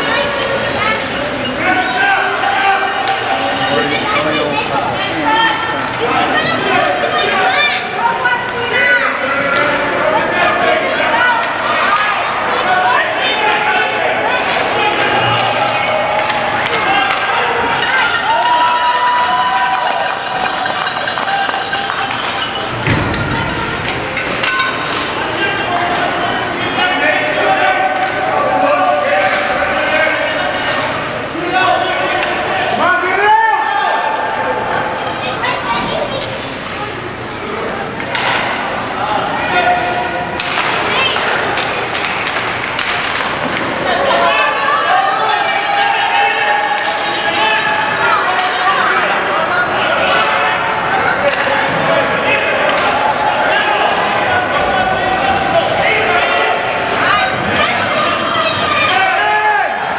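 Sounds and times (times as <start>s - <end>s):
spectators calling out and talking: 0.0s - 59.9s
sticks and puck clacking on ice: 16.1s - 27.0s, 40.4s - 44.3s.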